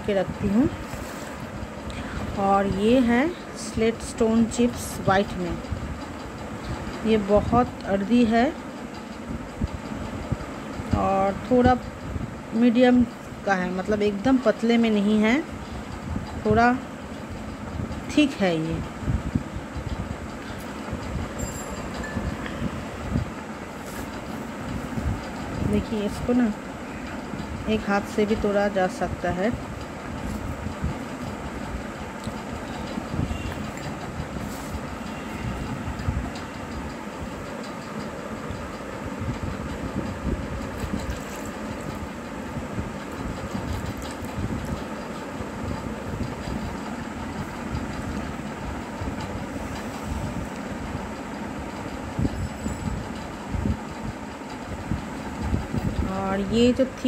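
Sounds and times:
low rumbling background noise: 0:00.0 - 0:57.0.

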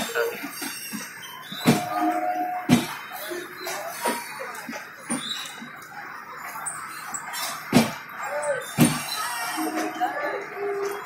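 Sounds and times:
high squeaks from running gear: 0:00.0 - 0:11.0
train coaches rumbling past: 0:00.0 - 0:11.0
train knock: 0:01.6 - 0:03.0, 0:08.8 - 0:09.1.

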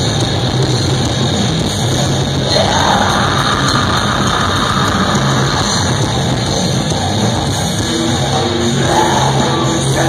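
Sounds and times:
death metal band playing live: 0:00.0 - 0:10.0
distorted electric guitars: 0:00.0 - 0:10.0
drums: 0:00.0 - 0:10.0.

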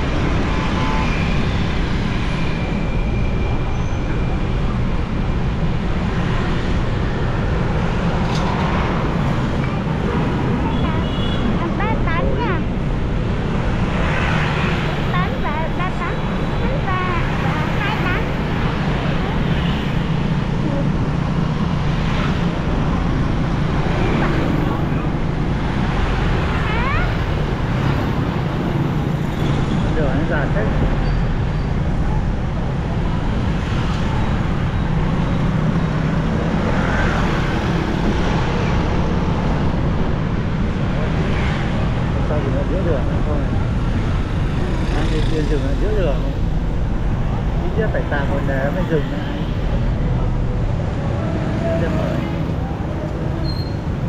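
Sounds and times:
busy street traffic with motorbikes: 0:00.0 - 0:54.0
low engine hum and road noise: 0:00.0 - 0:54.0
short high chirps and squeaks: 0:53.4 - 0:53.8.

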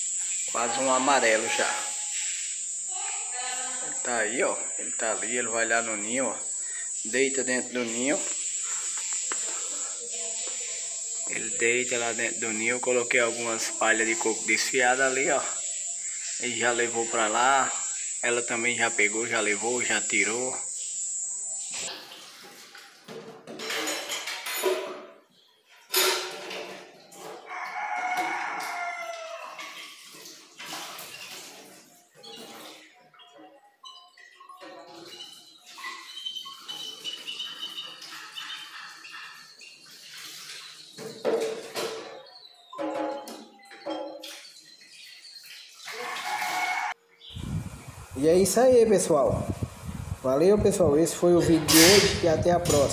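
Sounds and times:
rooster crowing: 0:27.4 - 0:29.6, 0:45.9 - 0:47.0
bird calls and chirps: 0:32.2 - 0:41.4, 0:42.0 - 0:46.0.

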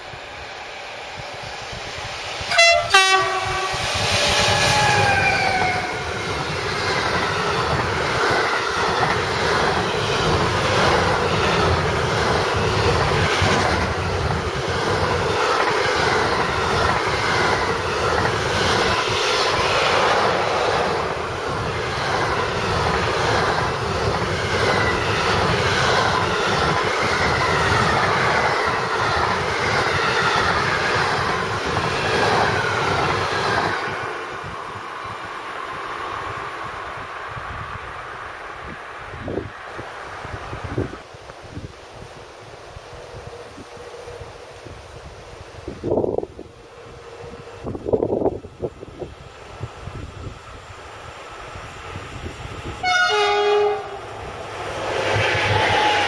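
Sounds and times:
locomotive passing: 0:00.0 - 0:42.1, 0:45.5 - 0:56.0
train wheels rumbling on rails: 0:00.0 - 0:56.0
train horn blast: 0:02.5 - 0:06.0, 0:52.8 - 0:54.1.

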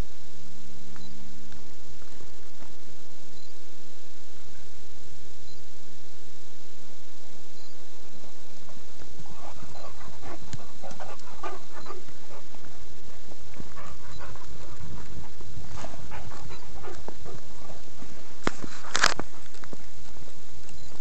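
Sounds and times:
footsteps on dirt trail: 0:08.0 - 0:21.0
dog panting: 0:09.2 - 0:19.6
sharp clicks: 0:09.7 - 0:12.2.

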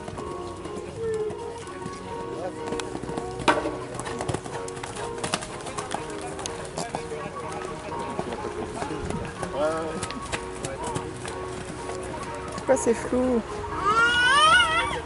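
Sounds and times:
horse hoofbeats on sand: 0:00.0 - 0:13.1
background music: 0:00.0 - 0:15.0.

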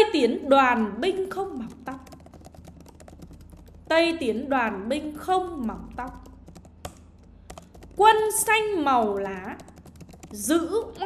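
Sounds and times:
keyboard typing clicks: 0:01.5 - 0:03.9, 0:05.7 - 0:10.5.

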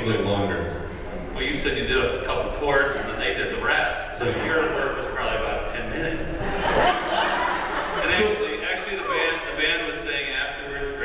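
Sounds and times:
man talking through a microphone: 0:00.0 - 0:06.4, 0:08.0 - 0:11.0.

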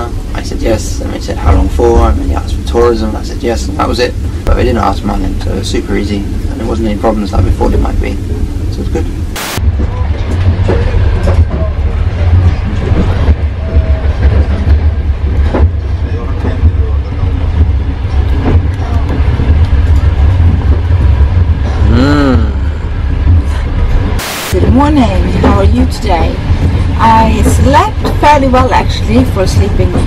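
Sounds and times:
train rumbling: 0:00.0 - 0:30.0
static hiss: 0:02.2 - 0:09.6, 0:24.2 - 0:24.6.

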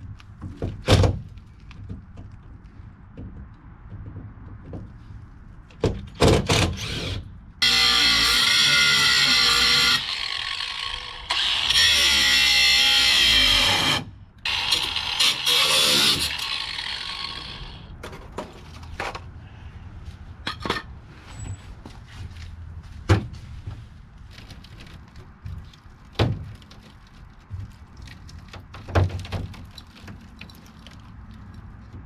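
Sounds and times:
angle grinder cutting metal: 0:06.8 - 0:17.9.

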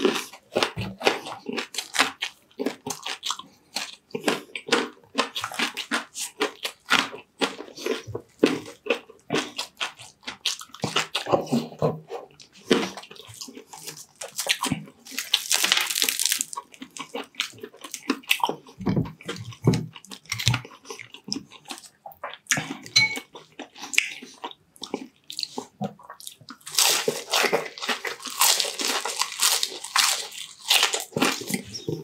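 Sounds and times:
crunching and chewing food: 0:00.0 - 0:32.0.

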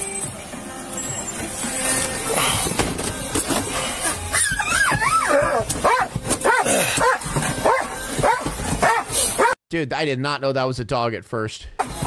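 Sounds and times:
dog whining: 0:04.0 - 0:09.6.

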